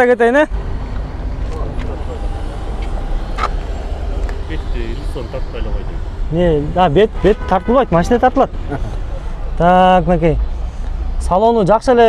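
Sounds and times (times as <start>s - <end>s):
car engine idling: 0.4s - 11.4s.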